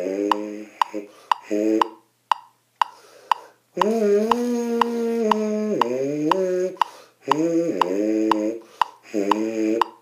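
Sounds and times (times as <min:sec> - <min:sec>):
metronome clicking: 0:00.3 - 0:10.0.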